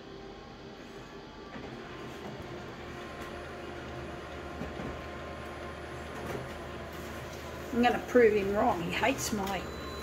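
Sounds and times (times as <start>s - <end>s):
photocopier humming and whirring: 0.0s - 10.0s.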